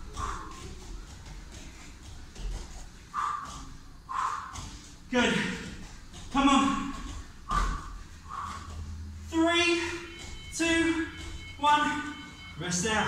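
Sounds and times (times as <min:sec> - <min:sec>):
person breathing: 0:00.0 - 0:00.8, 0:03.0 - 0:04.9, 0:07.5 - 0:09.1.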